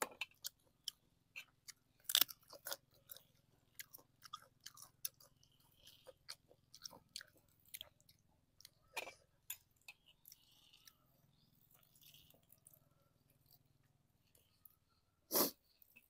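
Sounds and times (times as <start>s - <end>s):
chewing crunchy food: 0.0s - 16.0s.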